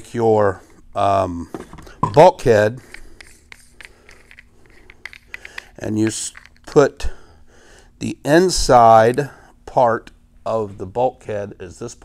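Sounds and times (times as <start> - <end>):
faint steady hum: 0.0 - 12.0
handling clicks: 2.9 - 6.8.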